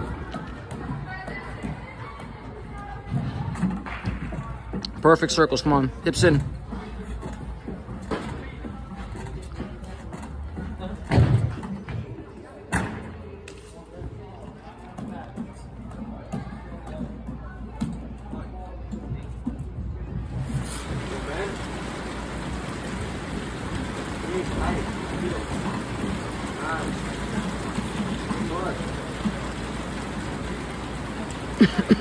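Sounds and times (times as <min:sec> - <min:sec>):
faint music: 0:00.0 - 0:32.0.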